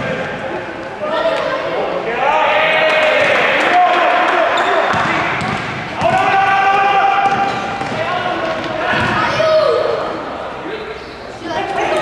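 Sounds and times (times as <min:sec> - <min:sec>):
voices shouting in a sports hall: 0:00.0 - 0:12.0
basketball bouncing on court: 0:04.9 - 0:09.4.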